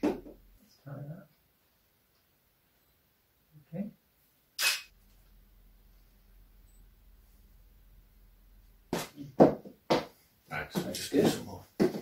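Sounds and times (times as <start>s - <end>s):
faint low mains hum: 0.0s - 11.8s
camera shutter click: 4.6s - 4.9s.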